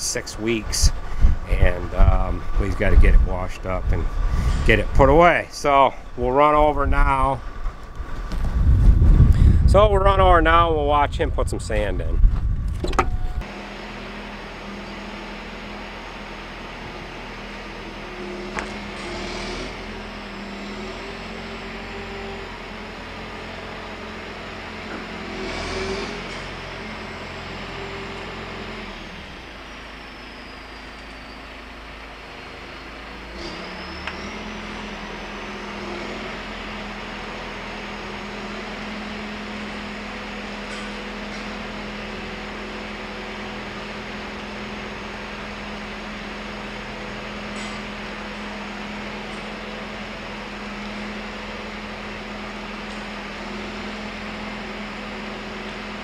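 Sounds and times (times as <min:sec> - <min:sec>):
truck engine running: 0:00.0 - 0:56.0.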